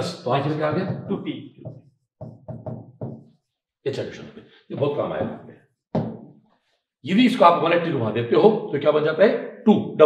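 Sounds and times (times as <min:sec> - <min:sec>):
marker tapping on whiteboard: 0:00.8 - 0:03.4, 0:04.8 - 0:06.4.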